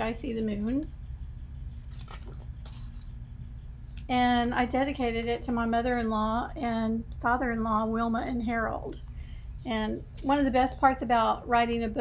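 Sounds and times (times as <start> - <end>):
low background rumble: 0.0 - 12.0
paper pages turning: 1.7 - 3.2.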